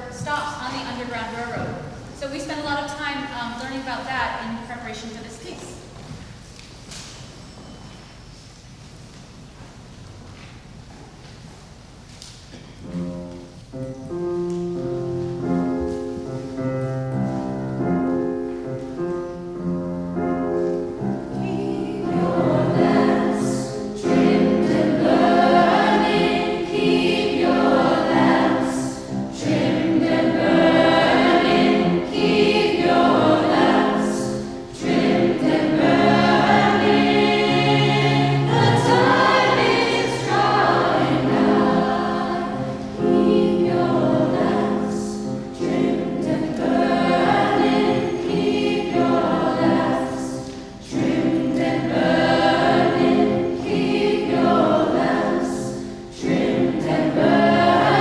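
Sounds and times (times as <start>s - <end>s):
choir singing: 21.0s - 58.0s.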